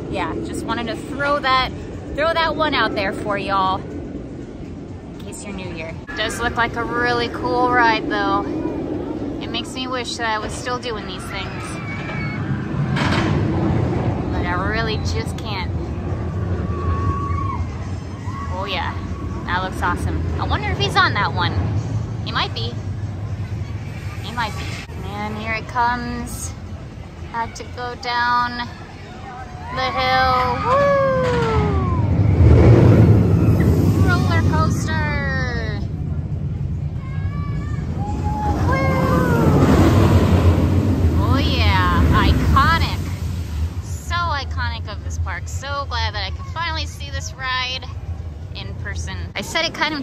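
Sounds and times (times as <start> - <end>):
low rumble: 0.0 - 27.4, 29.8 - 50.0
person yelling woo: 30.5 - 32.2.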